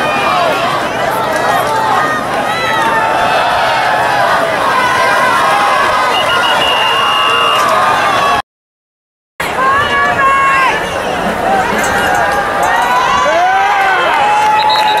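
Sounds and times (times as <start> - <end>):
crowd shouting and talking: 0.0 - 8.4, 9.4 - 15.0
referee's whistle: 6.1 - 7.8, 14.5 - 15.0.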